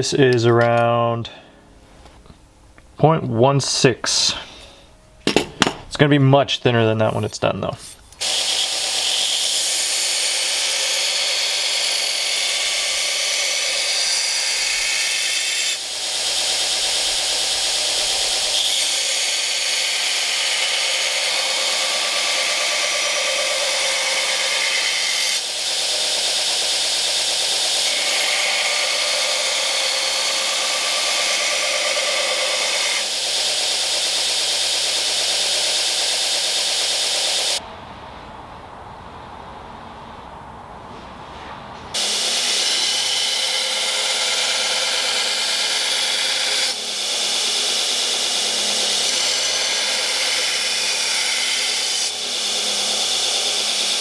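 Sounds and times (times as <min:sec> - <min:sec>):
belt grinder grinding steel: 0:08.1 - 0:37.6, 0:42.0 - 0:54.0.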